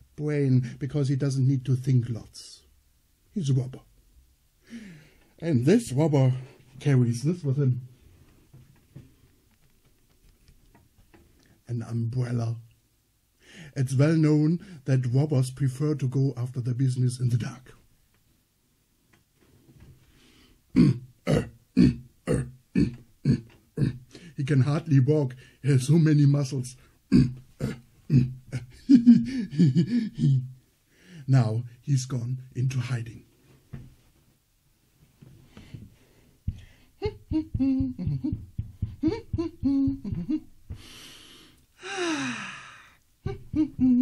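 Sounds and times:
man grunting: 20.8s - 24.0s, 27.1s - 30.5s
man sighing: 27.1s - 30.6s, 39.0s - 44.0s.

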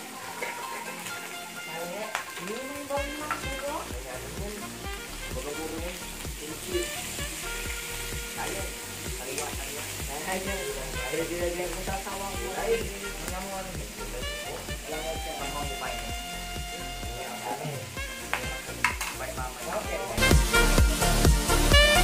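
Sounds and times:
background music with a beat: 0.0s - 22.0s
meat sizzling on a grill pan: 0.0s - 22.0s.

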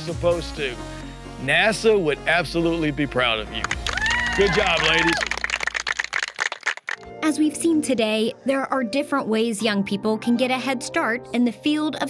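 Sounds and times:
small group clapping: 3.6s - 7.1s.

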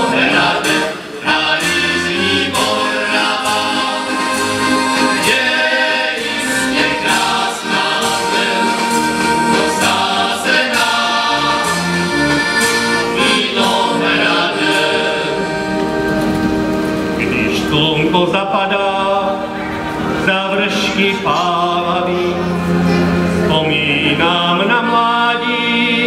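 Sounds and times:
accordion: 0.0s - 26.0s
men's choir singing in harmony: 0.0s - 26.0s.

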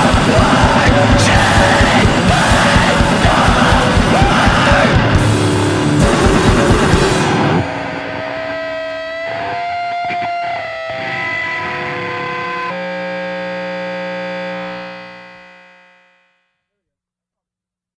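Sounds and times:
sustained high tone: 0.0s - 12.8s
distorted electric guitar chord ringing: 0.0s - 16.5s.

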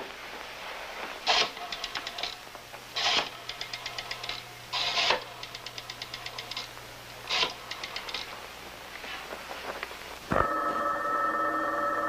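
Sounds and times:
rotary dial ratcheting rasp: 3.0s - 6.7s, 7.3s - 8.3s
rotary dial clicks spinning back: 7.3s - 8.3s.

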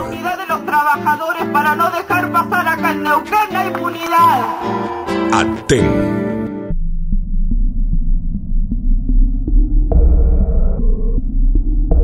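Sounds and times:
deep low drone: 4.4s - 12.0s.

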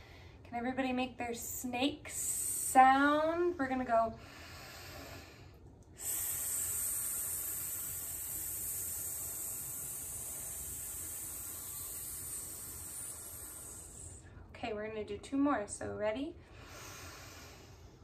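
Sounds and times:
people hissing: 6.0s - 14.2s.

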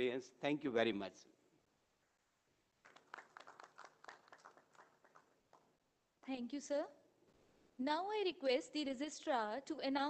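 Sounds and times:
faint audience clapping: 2.8s - 5.8s.

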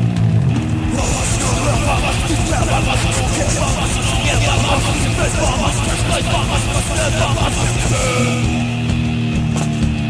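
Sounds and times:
distorted guitars: 0.0s - 10.0s
fast drums: 0.5s - 10.0s
shouted vocals: 0.8s - 8.9s.

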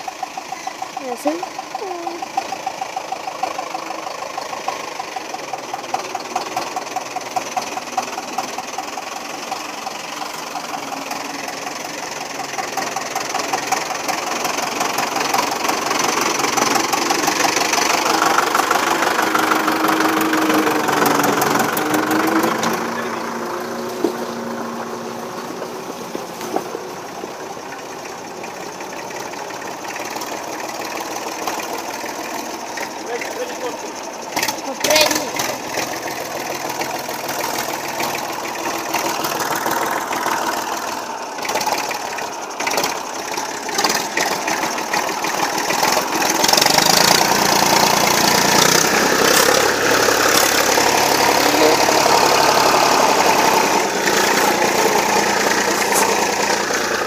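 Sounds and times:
diesel tractor engine under load: 0.0s - 57.0s.

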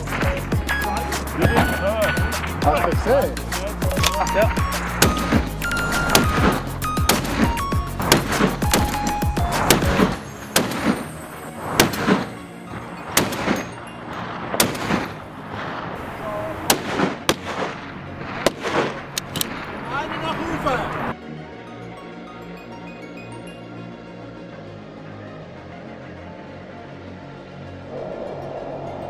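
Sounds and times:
music with a busy beat: 0.0s - 10.8s
rifle shots: 5.0s - 11.0s, 11.8s - 12.4s, 13.1s - 19.7s.

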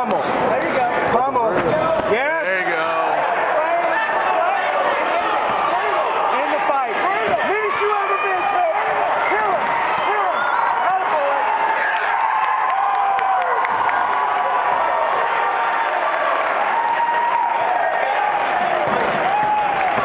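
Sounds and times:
crowd yelling: 0.0s - 20.0s
thump: 18.8s - 20.0s.

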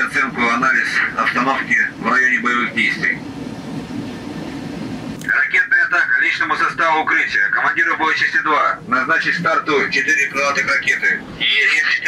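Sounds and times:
low machinery rumble: 0.0s - 12.0s.

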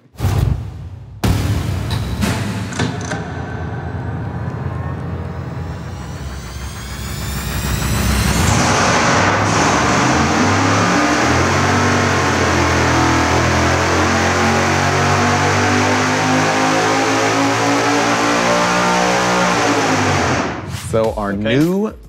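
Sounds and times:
supercharged engine revving: 4.4s - 20.7s.

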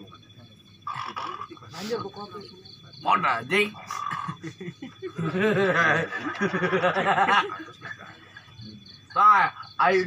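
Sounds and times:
indistinct talking voices: 0.0s - 10.0s.

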